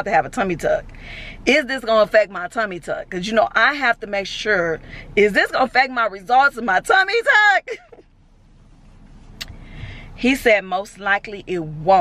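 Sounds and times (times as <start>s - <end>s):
car rumble inside cabin: 0.0s - 12.0s.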